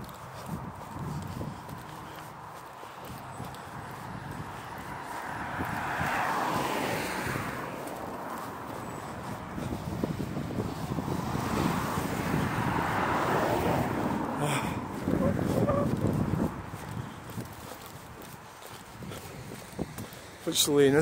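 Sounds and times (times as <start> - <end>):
traffic rumble: 0.0 - 21.0.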